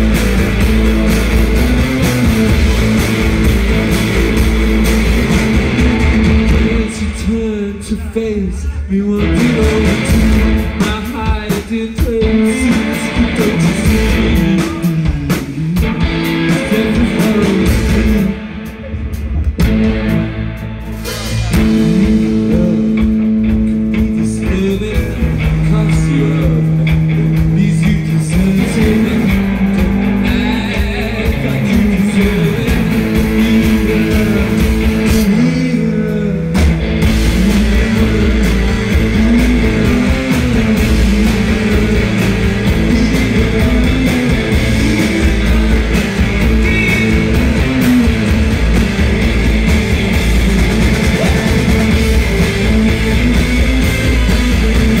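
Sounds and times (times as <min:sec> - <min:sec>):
rock band playing live: 0:00.0 - 0:55.0.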